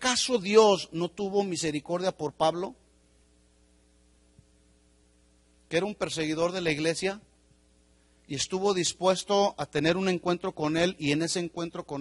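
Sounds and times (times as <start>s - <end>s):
faint mains hum: 0.0s - 12.0s.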